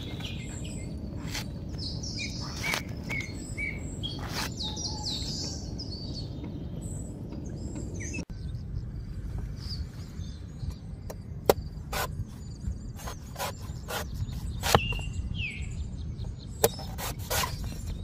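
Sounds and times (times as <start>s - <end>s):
low outdoor rumble: 0.0s - 16.6s
small birds chirping: 0.0s - 18.0s
cleaver chopping coconut: 13.0s - 15.0s.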